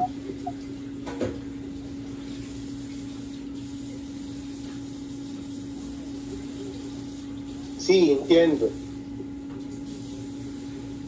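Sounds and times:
steady low hum: 0.0 - 1.0.

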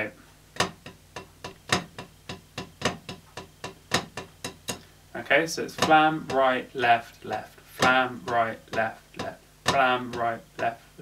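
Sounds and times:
drumsticks tapping practice pad: 0.0 - 11.0.

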